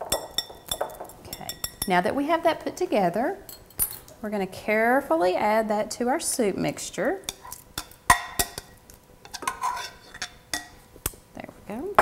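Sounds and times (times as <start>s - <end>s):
spoon clinking on glass bowl: 0.0s - 2.0s
spoon scraping glass bowl: 9.2s - 10.8s.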